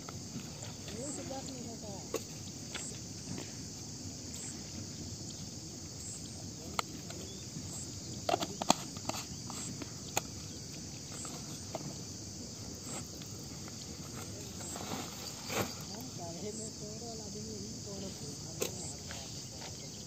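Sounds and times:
crickets chirping: 0:00.0 - 0:20.0.

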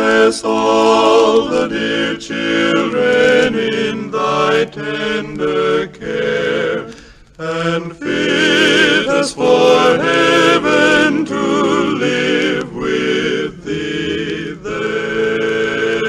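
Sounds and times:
male vocal quartet singing carol: 0:00.0 - 0:16.0.

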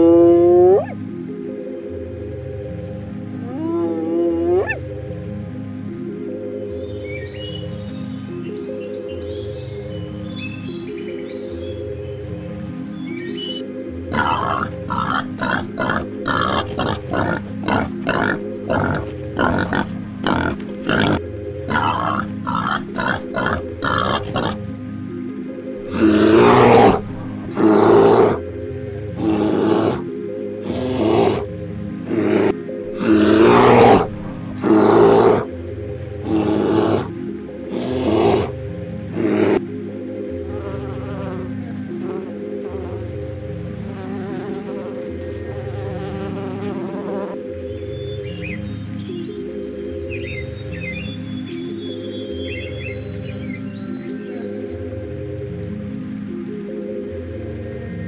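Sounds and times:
background music: 0:00.0 - 0:58.0
bear grunting roars: 0:14.1 - 0:24.6, 0:25.8 - 0:28.5, 0:29.2 - 0:35.6, 0:36.2 - 0:39.6.

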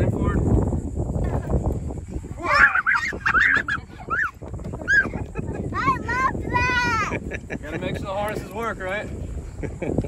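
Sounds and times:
child squealing and giggling: 0:02.4 - 0:07.2.

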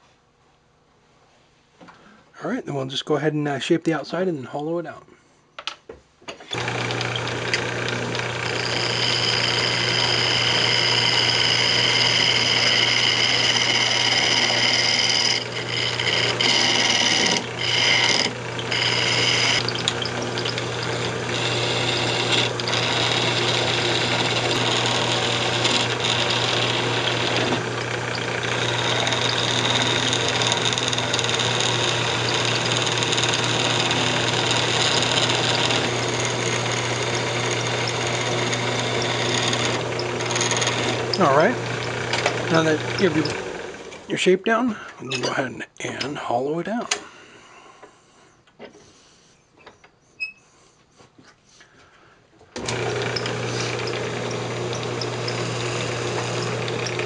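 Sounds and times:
wood lathe motor hum: 0:06.4 - 0:44.1, 0:52.6 - 0:57.0
turning tool cutting wood: 0:06.4 - 0:47.0, 0:52.5 - 0:57.0.

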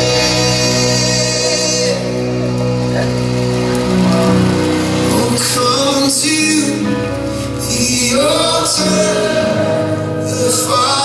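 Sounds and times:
held instrumental chords: 0:00.0 - 0:11.0
person singing: 0:00.0 - 0:11.0.

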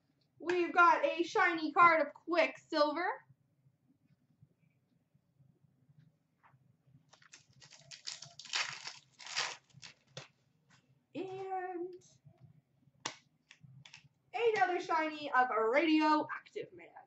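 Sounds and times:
foil wrapper crinkling: 0:07.1 - 0:10.4.

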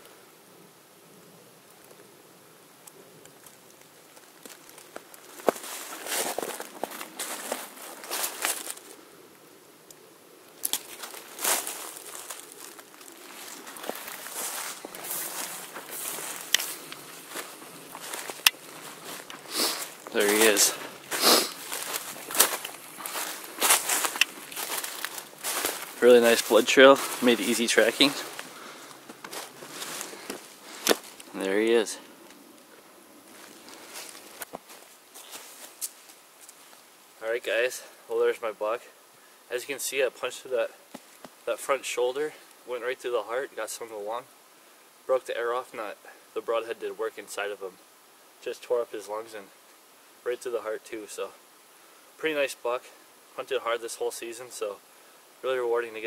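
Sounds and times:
footsteps through dry leaves: 0:04.4 - 0:09.0, 0:10.6 - 0:32.0, 0:33.2 - 0:36.8
sharp cracks: 0:10.6 - 0:29.5.

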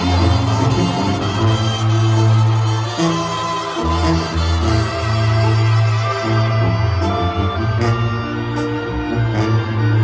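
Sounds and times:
brass band over pa: 0:00.0 - 0:10.0.

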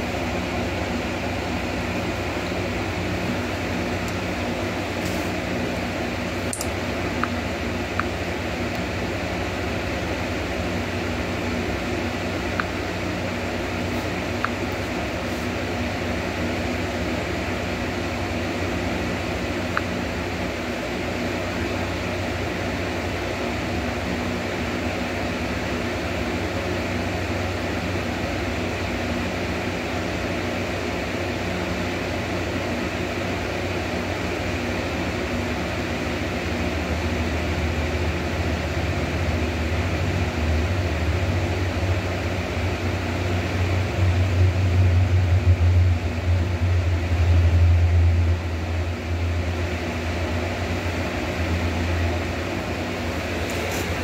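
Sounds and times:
machine hum and hiss: 0:00.0 - 0:54.0
low rumble: 0:44.3 - 0:49.6.

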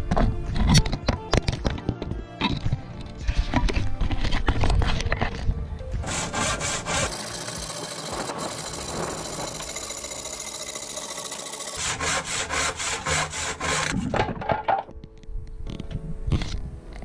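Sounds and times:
hand saw cutting wood: 0:06.0 - 0:14.4.

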